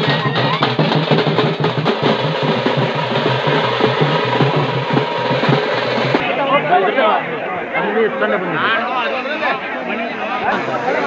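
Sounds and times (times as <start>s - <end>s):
fast continuous drumming: 0.0s - 6.3s.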